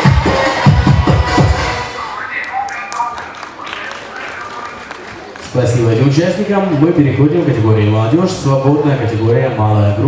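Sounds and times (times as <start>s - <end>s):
dance music: 0.0s - 4.8s
scattered voices: 1.6s - 10.0s.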